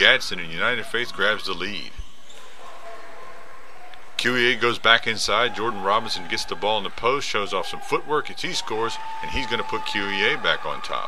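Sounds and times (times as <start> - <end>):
gym hall noise: 0.0 - 11.0
shoes squeaking on court: 1.2 - 4.2.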